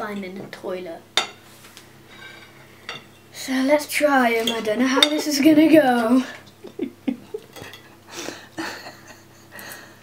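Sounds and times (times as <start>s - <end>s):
cutlery clinking on a plate: 7.4s - 7.9s.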